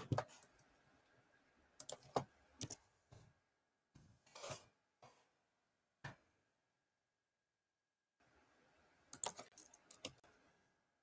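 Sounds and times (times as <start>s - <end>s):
computer keyboard clicks: 9.2s - 10.2s.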